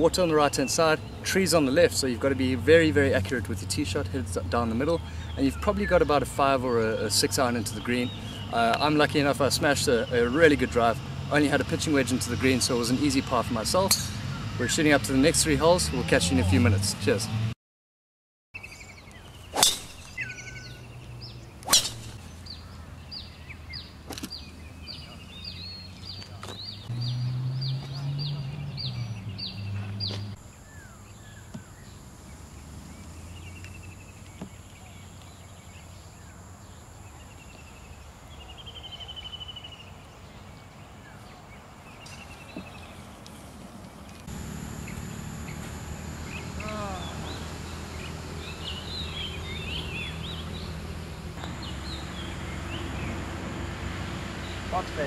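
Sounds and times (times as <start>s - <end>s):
birds chirping: 0.0s - 2.4s, 3.5s - 14.8s, 18.6s - 55.0s
falling whistled bird calls: 18.6s - 20.9s.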